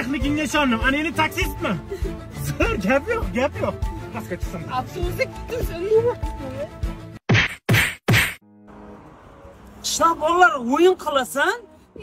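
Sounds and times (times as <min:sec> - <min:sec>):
punch sound effects: 0:07.3 - 0:08.4.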